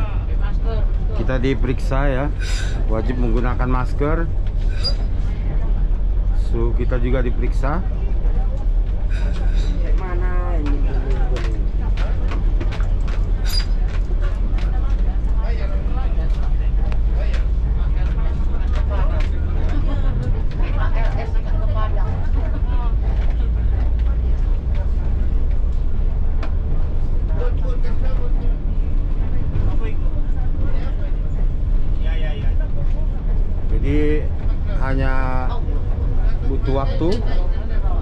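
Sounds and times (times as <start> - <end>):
bus diesel engine rumbling: 0.0 - 38.0.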